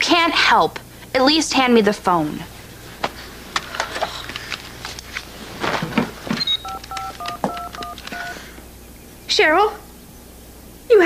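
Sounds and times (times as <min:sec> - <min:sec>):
touch-tone keypad beeps: 0:06.4 - 0:08.4.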